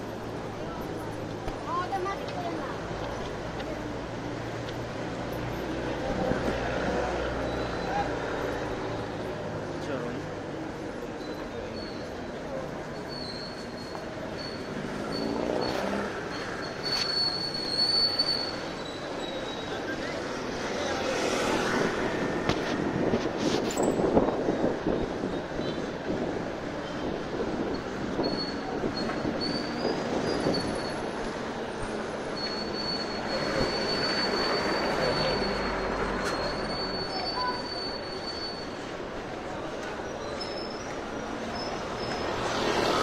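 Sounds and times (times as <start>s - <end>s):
vehicles passing: 0.0s - 43.0s.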